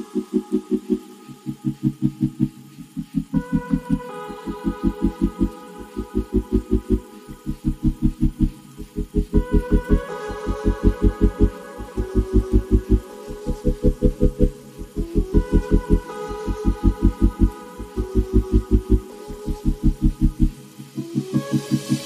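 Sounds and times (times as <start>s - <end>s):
music with pulsing low notes: 0.0s - 22.0s.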